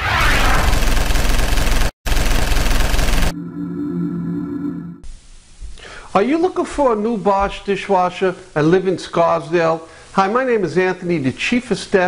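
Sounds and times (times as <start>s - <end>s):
low synthesized chord: 3.3s - 5.1s.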